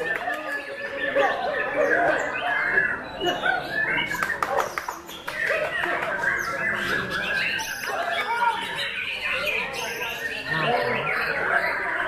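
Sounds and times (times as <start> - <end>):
crowd chatter: 0.0 - 12.0
other songbirds singing: 0.0 - 12.0.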